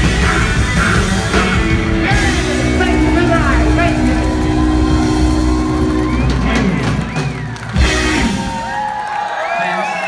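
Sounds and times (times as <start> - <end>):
rock band with electric guitars: 0.0 - 9.3
crowd whooping and cheering: 0.4 - 10.0.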